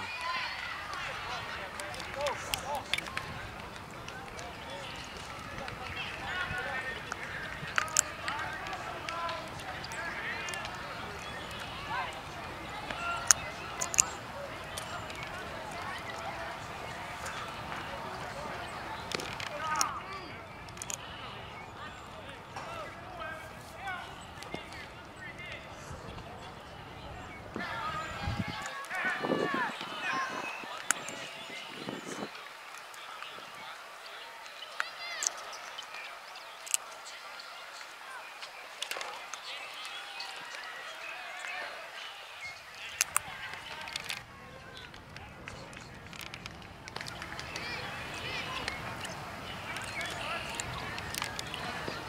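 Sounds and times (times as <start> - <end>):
people calling out and chattering: 0.0 - 52.0.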